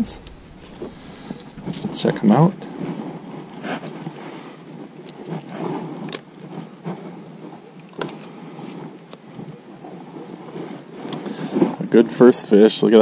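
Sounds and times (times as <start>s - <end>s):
rustling hiss: 0.0s - 13.0s.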